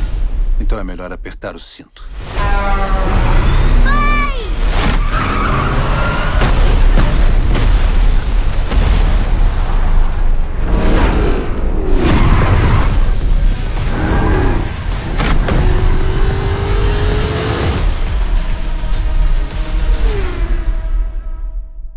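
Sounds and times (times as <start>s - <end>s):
trailer music: 0.0s - 21.9s
car engines: 11.4s - 21.6s.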